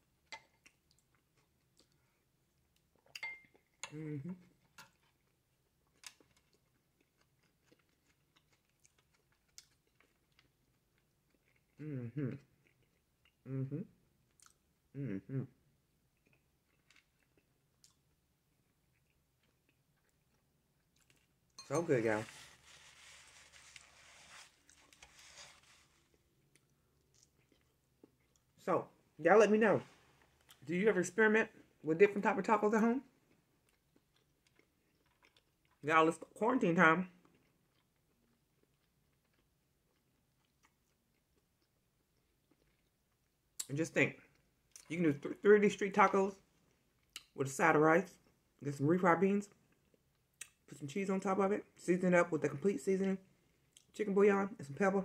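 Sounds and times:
close-up chewing: 4.4 - 13.4, 16.1 - 21.5, 22.2 - 28.6, 33.2 - 35.8, 37.2 - 43.7
person humming: 11.8 - 12.4, 13.5 - 13.9, 15.0 - 15.5.

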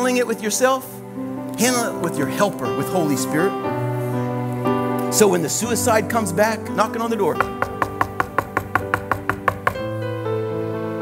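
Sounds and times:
keyboard holding sustained chords: 0.0 - 11.0
rapid knocking on wood: 7.4 - 9.9.

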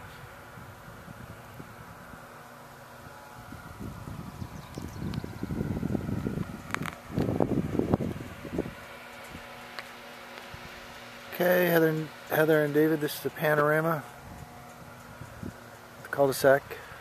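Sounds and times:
gusty wind on microphone: 0.0 - 2.3, 3.4 - 9.5, 14.2 - 15.6
faint steady hum: 0.0 - 17.0
microphone handling clicks: 6.4 - 7.4.

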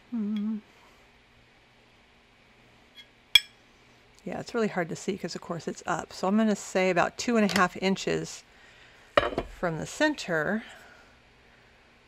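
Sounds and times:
woman humming hmm: 0.0 - 0.8.

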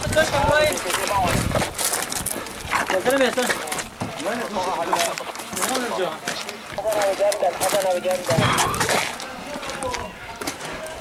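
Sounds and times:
footsteps on concrete steps: 0.0 - 11.0.

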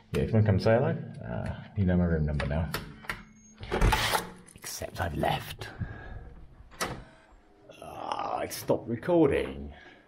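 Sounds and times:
man's voice: 4.6 - 5.8.

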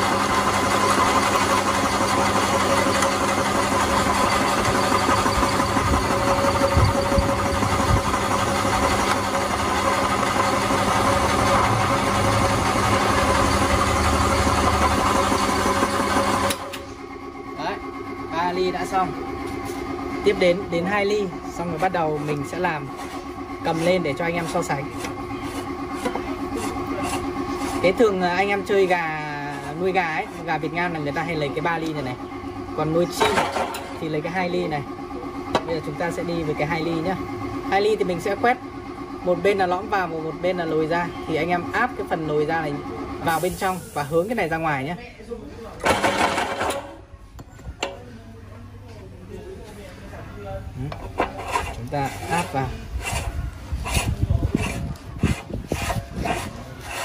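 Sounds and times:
electric motor humming: 0.0 - 33.2, 51.5 - 57.0.

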